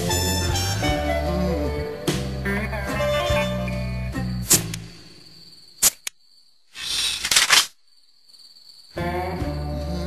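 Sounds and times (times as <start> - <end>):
crickets chirping: 0.1 - 10.0.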